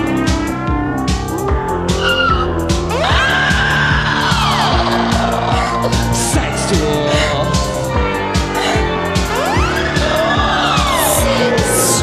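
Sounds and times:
synth-pop on synthesizer: 0.0s - 12.0s.

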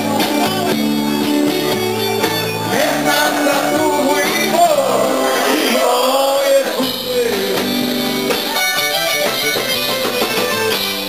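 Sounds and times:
guitar sustained notes: 0.0s - 11.0s
live band instrumental: 0.0s - 11.0s.

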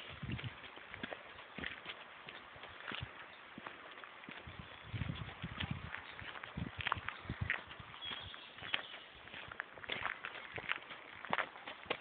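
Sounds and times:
footsteps on dirt path: 0.0s - 12.0s.

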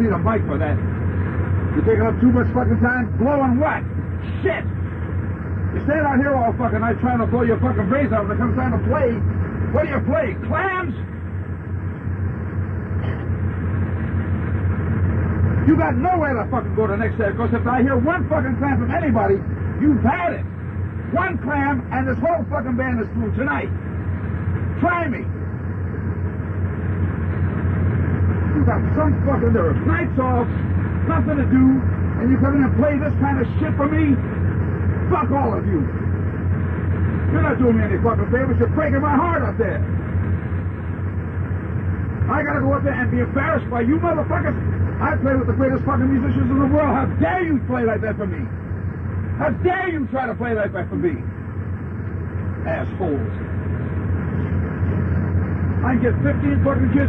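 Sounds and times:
bus engine droning: 0.0s - 57.0s
tape hiss: 0.0s - 57.0s.

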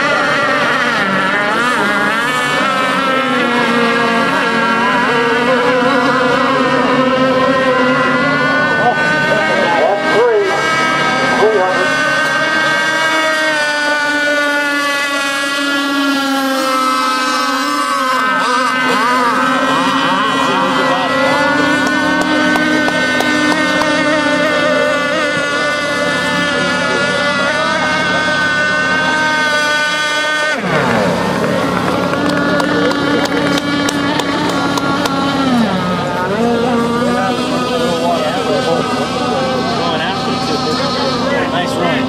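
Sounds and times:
model boat engines whining: 0.0s - 42.0s.

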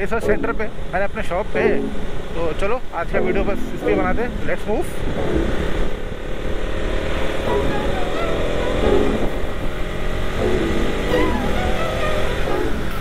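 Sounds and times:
background music: 0.0s - 6.1s, 6.9s - 13.0s
motorcycle cruising: 0.0s - 13.0s
road and wind noise: 0.0s - 13.0s.

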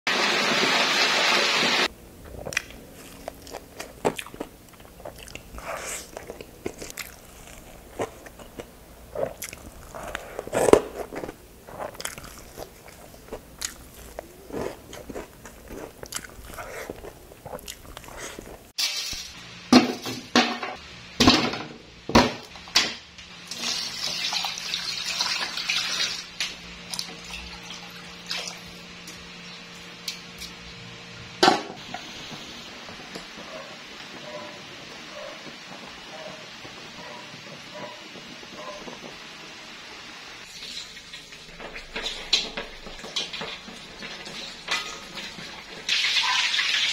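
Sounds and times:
low hum with hiss: 1.7s - 46.1s
crunching and chewing: 2.2s - 18.7s.

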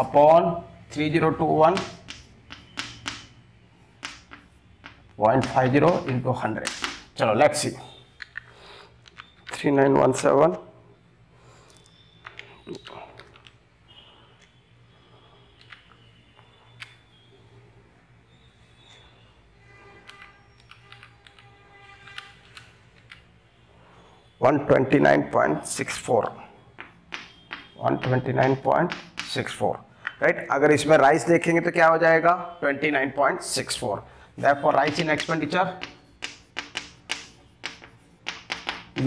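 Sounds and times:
chalk tapping and scraping on chalkboard: 1.7s - 3.4s, 4.0s - 7.1s, 26.8s - 29.6s, 34.5s - 39.0s.

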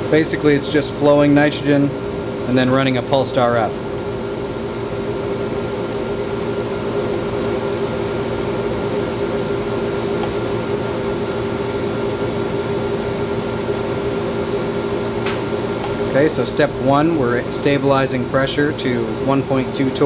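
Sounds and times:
vacuum pump machine hum: 0.0s - 20.0s.

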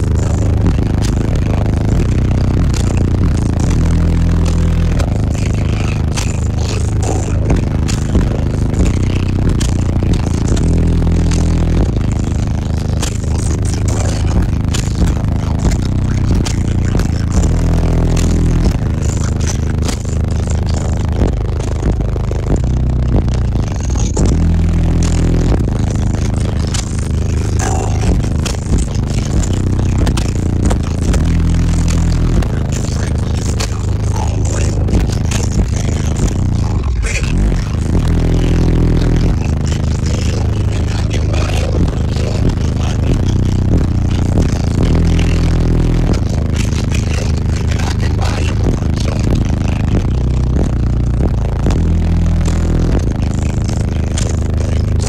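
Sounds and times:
loud bass-heavy music: 0.0s - 55.0s.

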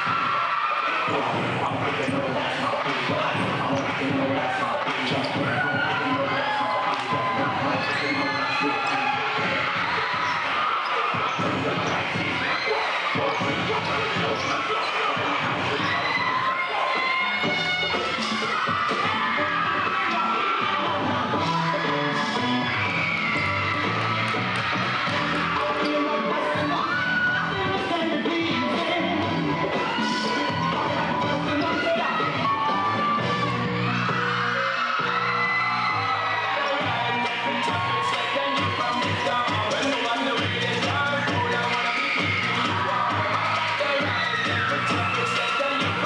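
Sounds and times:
audience cheering and shouting: 0.0s - 46.0s
music with bass line: 1.0s - 12.6s, 13.2s - 46.0s.

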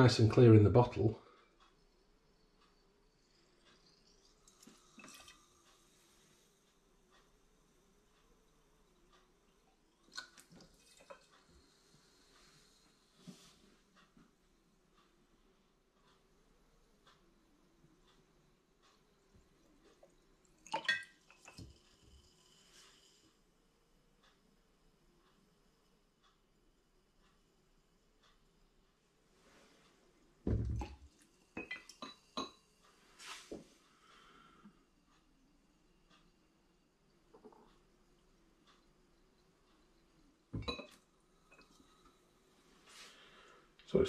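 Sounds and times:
glass bottles clinking: 20.6s - 21.7s, 31.6s - 32.6s, 40.6s - 40.9s.

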